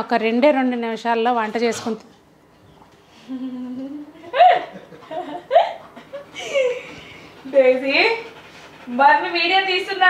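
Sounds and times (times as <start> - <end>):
woman humming: 3.2 - 4.6
woman laughing: 3.3 - 7.2.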